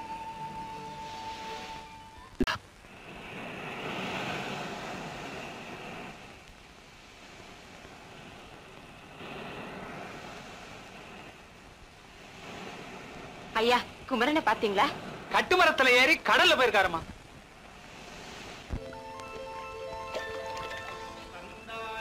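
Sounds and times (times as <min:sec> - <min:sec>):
sea surf washing in: 0:00.0 - 0:22.0.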